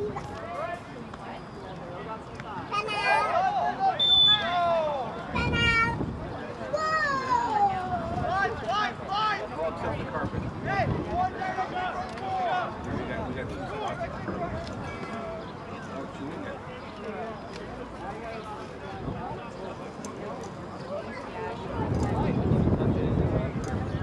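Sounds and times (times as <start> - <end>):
players shouting: 10.6 - 12.8.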